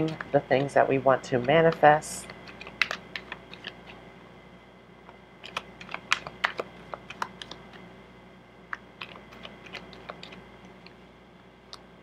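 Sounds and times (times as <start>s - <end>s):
cards being shuffled: 1.4s - 4.0s, 5.4s - 7.9s, 8.7s - 11.0s.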